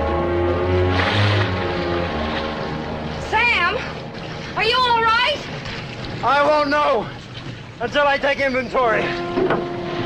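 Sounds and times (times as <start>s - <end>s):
music: 0.0s - 6.0s, 8.7s - 10.0s
water washing: 0.0s - 10.0s.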